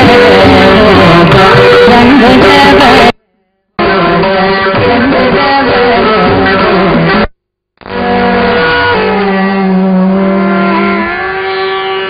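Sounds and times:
low drone note: 0:07.8 - 0:12.0.

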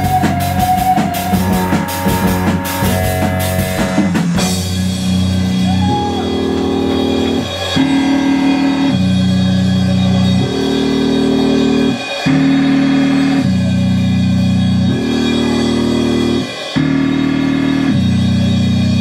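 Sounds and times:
drum kit: 0:00.0 - 0:19.0.

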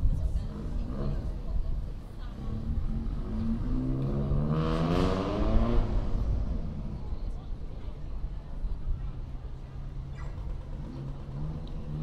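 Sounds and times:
low traffic rumble: 0:00.0 - 0:12.0
vehicle engine accelerating: 0:00.4 - 0:07.2, 0:10.4 - 0:12.0.

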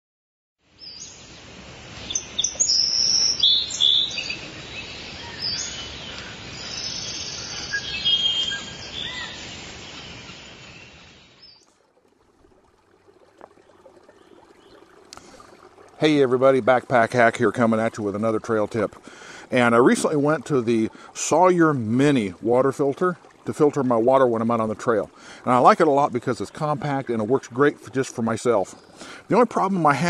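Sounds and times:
faint outdoor background noise: 0:00.6 - 0:30.0
birds chirping and singing: 0:02.1 - 0:11.6.

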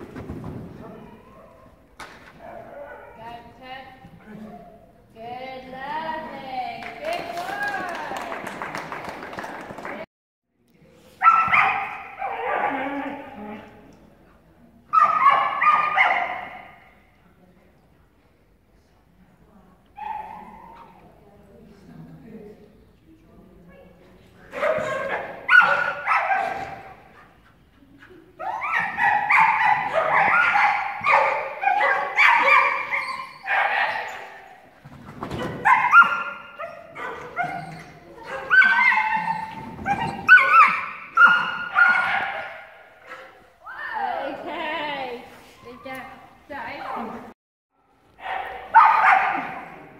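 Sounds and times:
dog barking and yelping: 0:24.6 - 0:26.8, 0:28.4 - 0:34.4, 0:35.5 - 0:43.4, 0:48.2 - 0:49.6.

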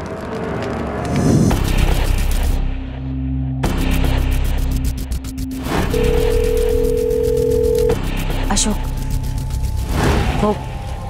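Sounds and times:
music with pulsing beat: 0:03.6 - 0:09.7
telephone ringback tone: 0:06.0 - 0:08.0.

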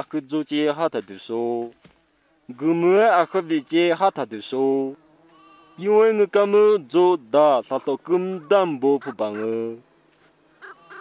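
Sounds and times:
person speaking dialogue: 0:05.8 - 0:09.8.

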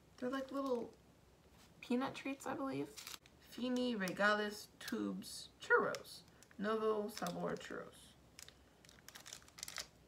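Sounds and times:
plastic wrapper crinkling: 0:02.9 - 0:04.2, 0:05.9 - 0:10.0.

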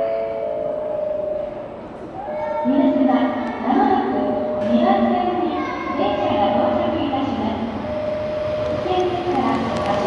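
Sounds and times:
electric train running on rails: 0:00.0 - 0:10.0.

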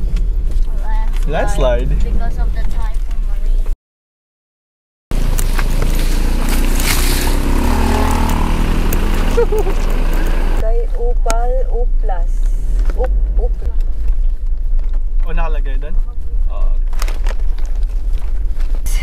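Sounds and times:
car engine and tyre rumble: 0:00.0 - 0:03.8, 0:05.1 - 0:19.0
rough road noise: 0:00.0 - 0:03.8, 0:05.1 - 0:19.0
people laughing and talking: 0:09.2 - 0:10.4.

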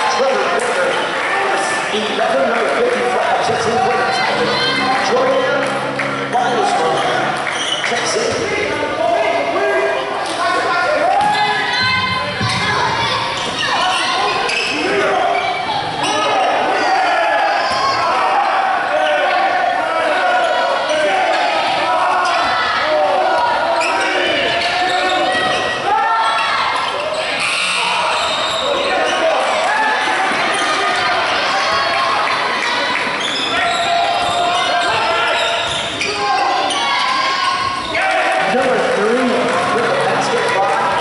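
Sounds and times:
indistinct voices echoing: 0:00.0 - 0:41.0
basketball bouncing on wooden court: 0:11.2 - 0:12.8.

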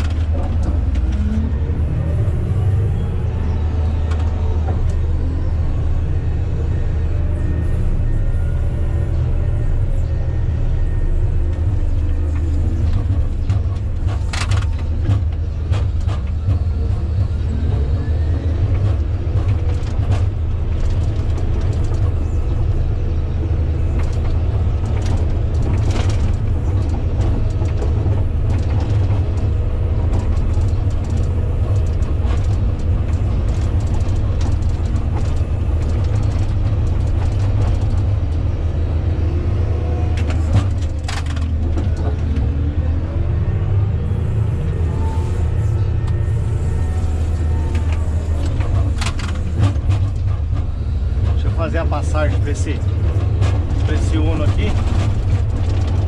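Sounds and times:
diesel engine running under load: 0:00.0 - 0:56.0
machine clicks and rattles: 0:23.9 - 0:38.5, 0:47.7 - 0:56.0.

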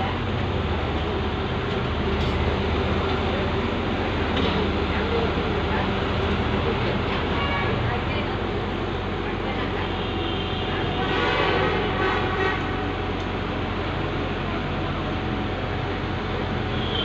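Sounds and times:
traffic engine rumble: 0:00.0 - 0:17.0
horn blare: 0:09.9 - 0:12.8, 0:16.7 - 0:17.0.

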